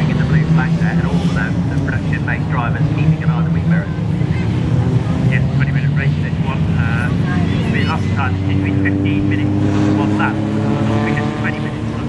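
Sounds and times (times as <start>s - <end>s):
race car engines under load: 0.0s - 12.0s.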